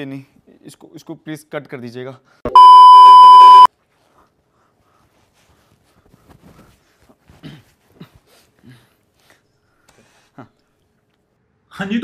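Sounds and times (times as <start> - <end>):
high-pitched censor bleep: 2.5 - 3.7.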